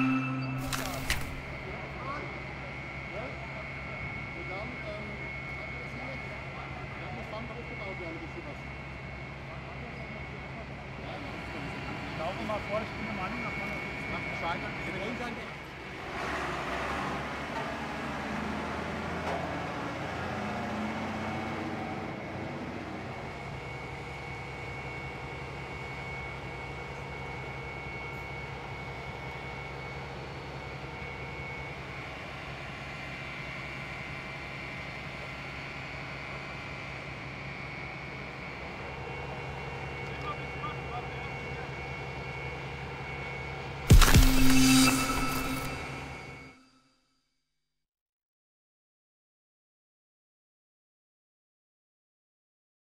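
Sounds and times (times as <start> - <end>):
faint high whine: 0.0 - 15.8, 37.7 - 46.8
fire engine hum: 0.0 - 46.5.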